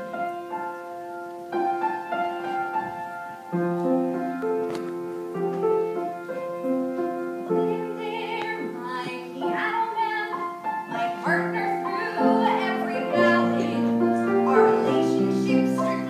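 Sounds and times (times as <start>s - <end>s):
piano playing slow chords: 0.0s - 16.0s.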